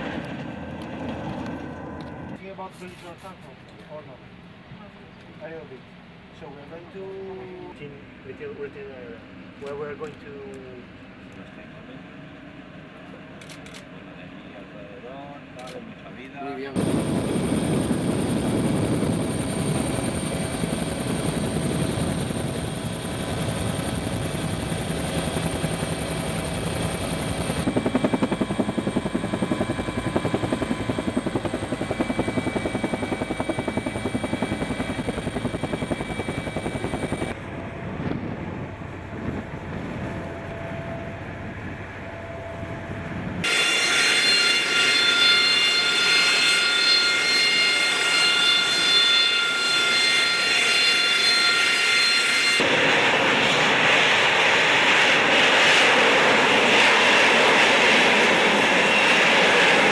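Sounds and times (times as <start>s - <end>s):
helicopter rotor and engine: 0.0s - 59.9s
jet engine whining: 16.6s - 59.9s.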